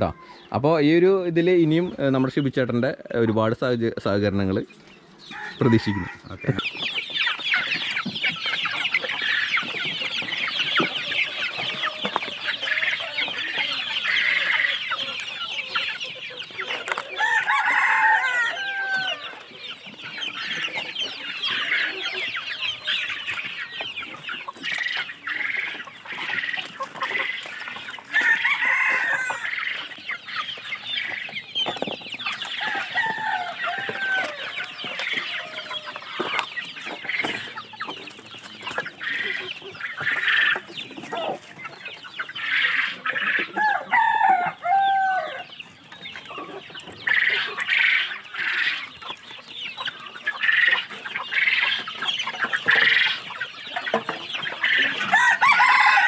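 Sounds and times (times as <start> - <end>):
chickens clucking and cheeping: 0.0 - 56.0
loud chicken calls: 4.2 - 56.0.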